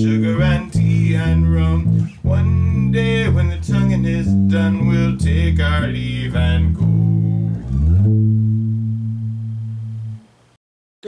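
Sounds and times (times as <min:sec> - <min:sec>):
electric bass guitar note: 0:00.0 - 0:10.4.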